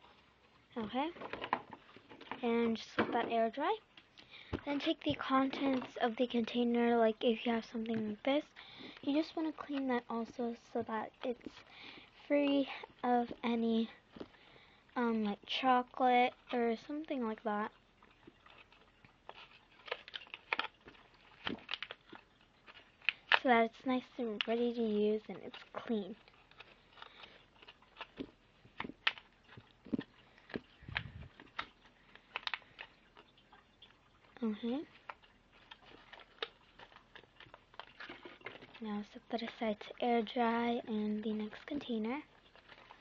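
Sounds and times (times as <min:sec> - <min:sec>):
thin plastic crinkling and clicking: 0:00.0 - 0:43.0
plastic container clicking and rustling: 0:34.5 - 0:38.8.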